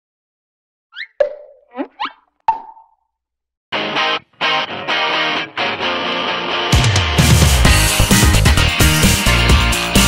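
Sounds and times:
cartoon bubble pops and bloops: 1.0s - 3.0s
loud music: 5.9s - 10.0s.

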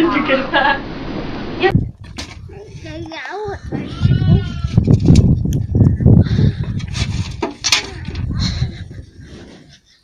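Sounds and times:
uneven low rumbling: 1.0s - 9.8s
goat kid bleating: 3.7s - 4.8s.

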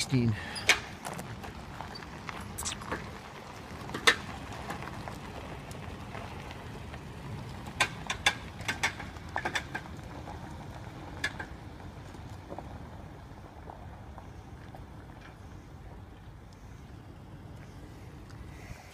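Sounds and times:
trailer clicks and knocks: 0.0s - 15.4s
engine and tyre rumble on gravel: 0.0s - 18.9s.

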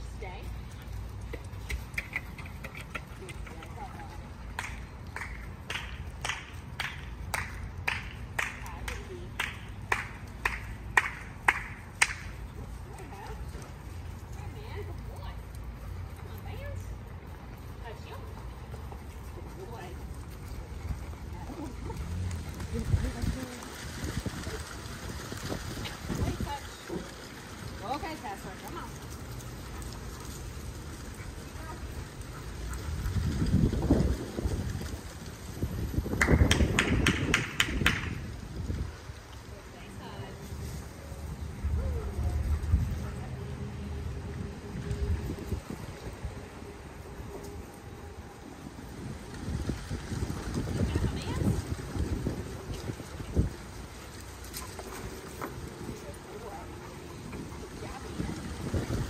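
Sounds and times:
person clapping hands: 4.5s - 12.4s, 36.2s - 38.2s
wind rumbling on microphone: 19.3s - 28.1s, 29.7s - 59.0s.

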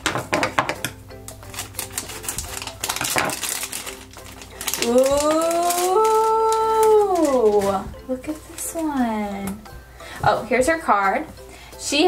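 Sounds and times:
background music: 0.0s - 12.0s
plastic bag crinkling and tearing: 1.3s - 9.0s.

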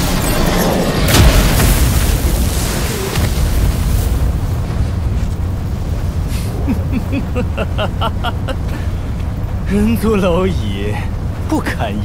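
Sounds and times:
explosion boom with deep rumble: 1.0s - 9.0s.

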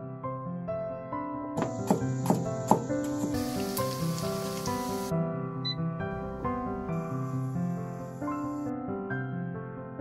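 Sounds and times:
soft instrumental music: 0.0s - 10.0s
garlic sizzling in oil: 2.1s - 5.1s.

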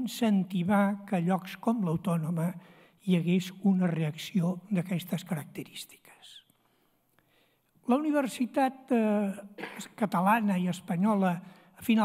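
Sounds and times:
man speaking into a microphone: 0.0s - 6.4s, 7.8s - 12.0s.

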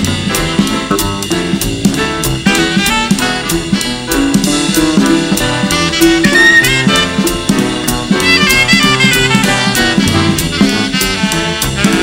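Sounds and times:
cymbals struck rhythmically: 0.0s - 12.0s
drum kit: 0.0s - 12.0s
saxophone solo: 2.4s - 4.2s, 5.6s - 12.0s.

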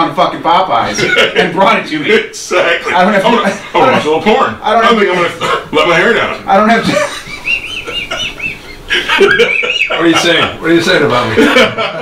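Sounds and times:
person squeaky laughter: 6.8s - 10.6s.

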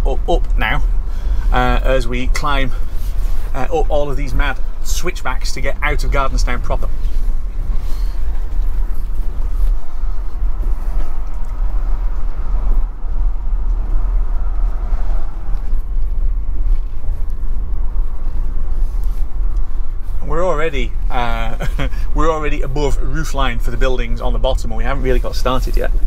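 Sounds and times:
road and tyre noise in car: 0.0s - 26.0s.

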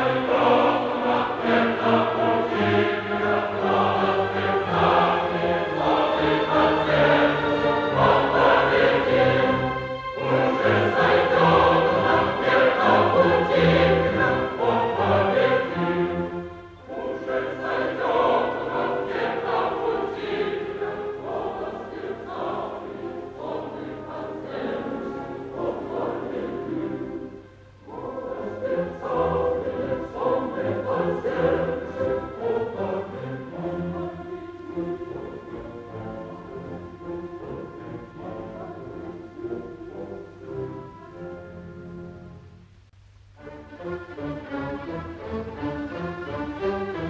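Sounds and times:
opera chorus singing: 0.0s - 42.5s, 43.5s - 47.0s
orchestra: 0.0s - 47.0s.

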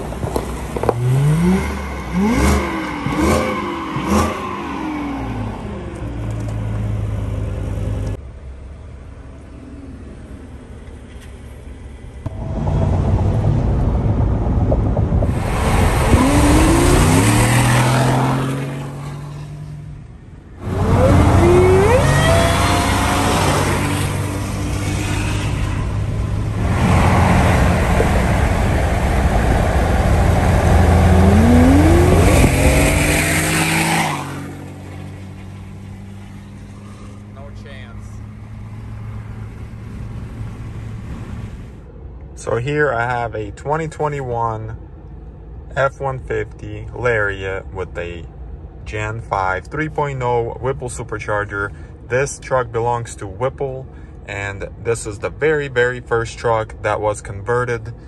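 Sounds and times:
road noise: 0.0s - 58.0s
truck engine accelerating: 12.2s - 19.8s, 20.6s - 41.8s.

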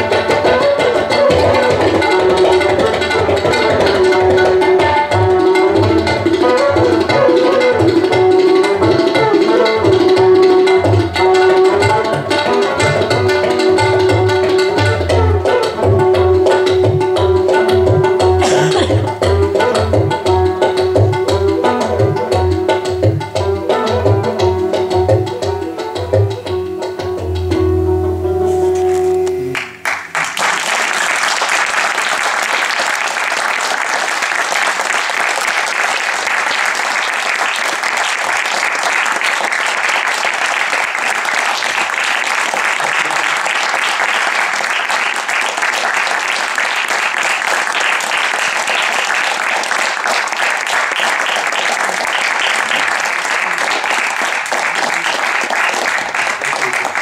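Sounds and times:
tabla: 0.0s - 57.0s
bamboo flute: 0.4s - 21.4s
audience applauding: 18.4s - 19.2s, 29.3s - 57.0s.

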